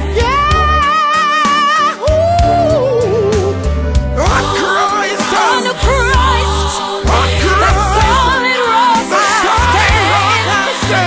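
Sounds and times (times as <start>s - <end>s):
bass and backing band: 0.0s - 8.5s, 9.4s - 11.0s.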